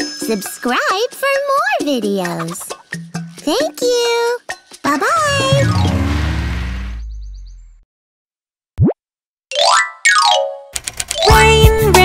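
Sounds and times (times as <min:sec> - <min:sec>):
cartoon whoosh: 0:05.1 - 0:07.2.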